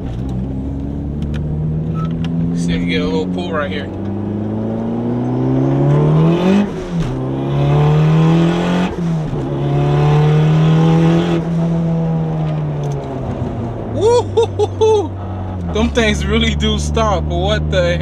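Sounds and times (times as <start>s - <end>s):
car engine accelerating: 0.0s - 18.0s.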